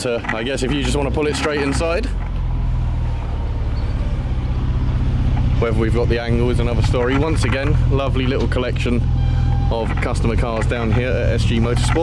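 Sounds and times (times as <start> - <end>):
car engine running at low revs: 0.0 - 12.0.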